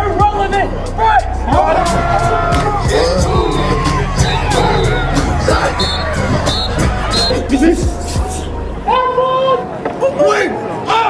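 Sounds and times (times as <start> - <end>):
bass-heavy music: 0.0 - 9.8.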